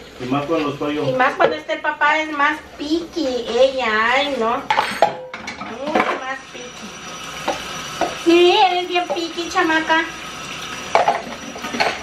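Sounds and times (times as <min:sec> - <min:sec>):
plastic dishes clattering in sink: 0:11.0 - 0:12.0.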